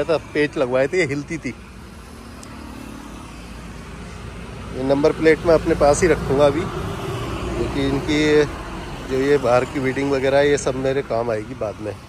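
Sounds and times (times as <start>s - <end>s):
outdoor background noise: 0.0s - 12.0s
vehicle engine humming: 0.0s - 12.0s.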